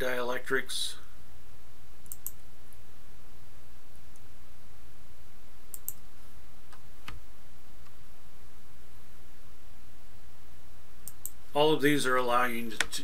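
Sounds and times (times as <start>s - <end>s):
low background hum: 0.0s - 13.0s
computer mouse clicking: 2.0s - 2.4s, 5.7s - 6.0s, 11.0s - 11.4s.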